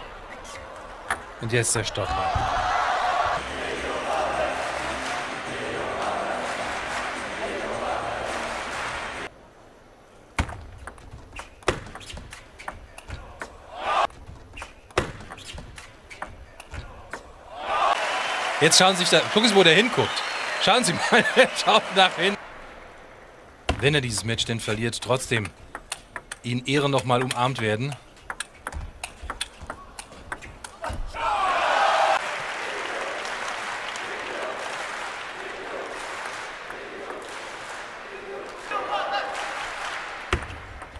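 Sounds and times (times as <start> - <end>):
table tennis ball clicks: 25.4 - 26.5, 27.2 - 30.8.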